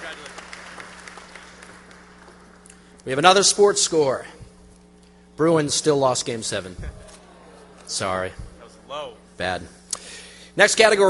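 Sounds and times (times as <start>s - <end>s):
audience applause: 0.0s - 2.7s.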